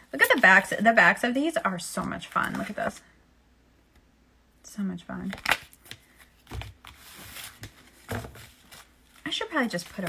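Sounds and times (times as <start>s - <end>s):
cards being shuffled: 2.3s - 2.9s, 5.2s - 10.0s.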